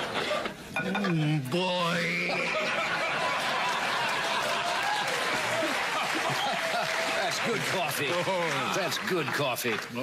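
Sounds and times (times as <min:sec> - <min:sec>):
audience applauding: 0:02.6 - 0:10.0.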